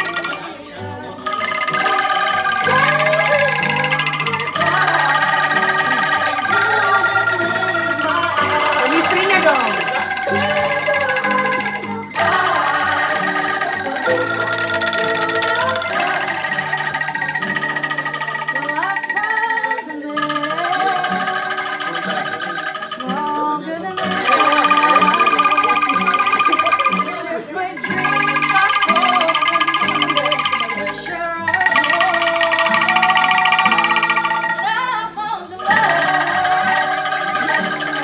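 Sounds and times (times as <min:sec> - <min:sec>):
acoustic guitar: 0:00.0 - 0:38.0
bamboo rattles shaking chords: 0:00.0 - 0:38.0
people singing: 0:00.0 - 0:38.0.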